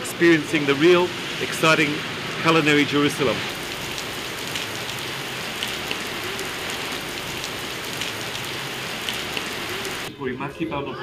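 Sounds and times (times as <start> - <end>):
raindrops ticking close by: 0.0 - 10.1
steady rain on pavement: 0.0 - 10.1.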